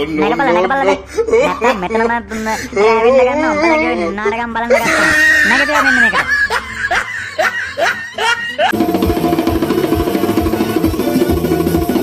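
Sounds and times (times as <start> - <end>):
cartoon voice laughing: 0.0 - 8.8
music with hand-drum beat: 8.7 - 12.0.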